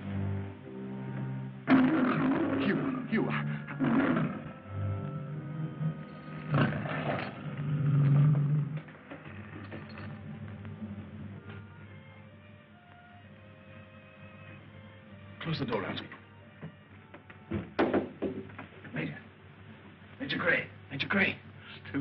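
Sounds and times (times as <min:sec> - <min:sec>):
orchestral film music: 0:00.0 - 0:17.7
lions roaring: 0:01.7 - 0:11.4.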